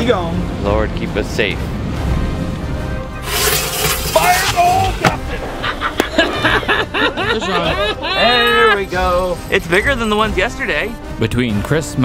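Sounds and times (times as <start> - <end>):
background music: 0.0 - 12.0
firework hissing crackle: 3.2 - 4.8.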